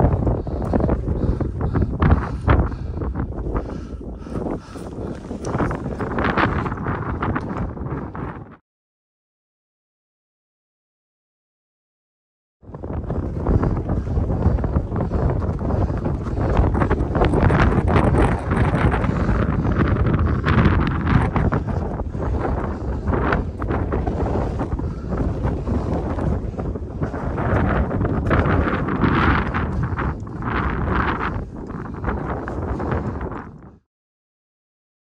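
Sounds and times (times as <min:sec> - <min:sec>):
wind buffeting microphone: 0:00.0 - 0:08.6, 0:12.6 - 0:33.9.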